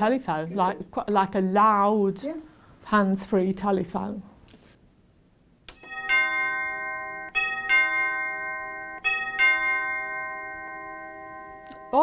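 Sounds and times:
recorded doorbell ding-dong chime: 5.8s - 12.0s.

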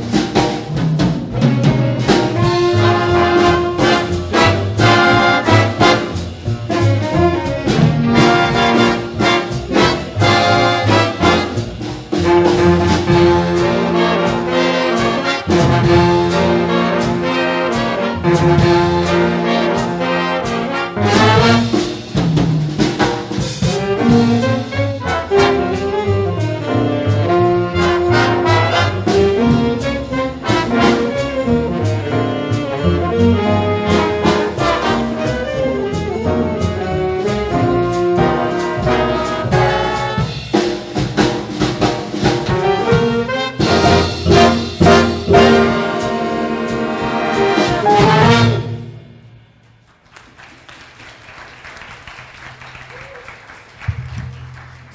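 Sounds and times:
upright bass: 0.0s - 48.8s
trombones: 0.0s - 49.4s
drum kit and cymbals: 0.0s - 49.8s
piano: 0.0s - 54.9s
brass section playing chords: 1.4s - 22.0s, 23.6s - 40.6s, 42.4s - 49.3s
trumpets: 1.4s - 22.0s, 23.6s - 40.6s, 42.4s - 49.3s.

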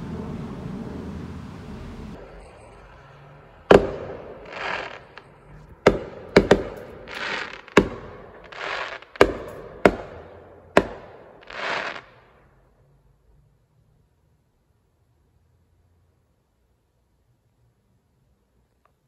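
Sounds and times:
fireworks bangs: 0.0s - 12.5s
firework hiss: 3.7s - 10.2s, 10.8s - 12.2s.

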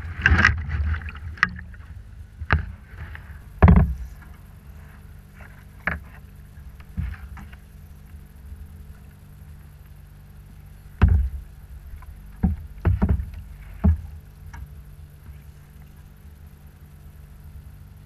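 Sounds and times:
steady low rumble: 0.0s - 18.0s
knocks on kayak hull: 3.6s - 4.2s, 11.0s - 11.5s, 12.4s - 14.1s.

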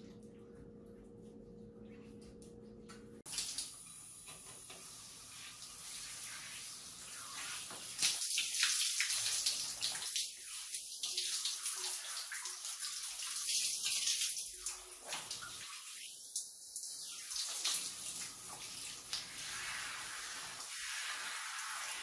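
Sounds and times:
shower spray on skin and hair: 3.3s - 14.4s, 17.1s - 22.0s.

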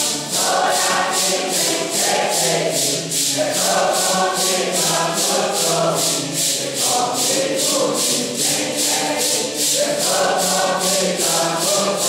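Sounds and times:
congregation singing a hymn: 0.0s - 12.0s
maracas shaken to a beat: 0.0s - 12.0s.

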